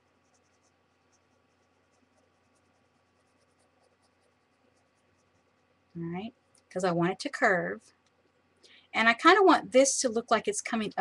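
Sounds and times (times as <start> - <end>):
pencil scratching on paper: 0.0 - 5.9
low steady hum: 0.0 - 11.0.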